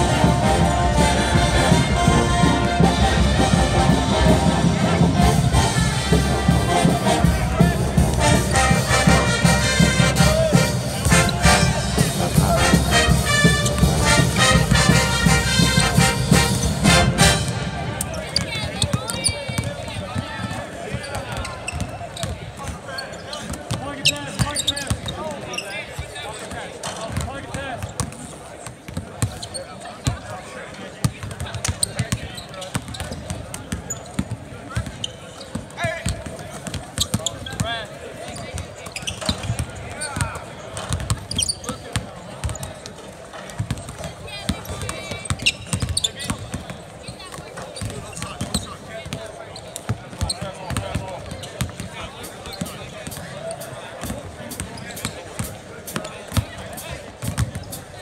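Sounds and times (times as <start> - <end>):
voices in background: 0.0 - 58.0
basketballs bouncing on hardwood: 39.3 - 42.7.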